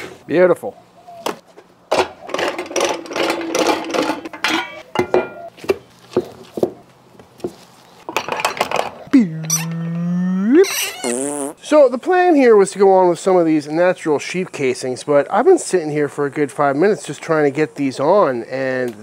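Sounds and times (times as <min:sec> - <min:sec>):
man humming low note: 0:09.1 - 0:10.8.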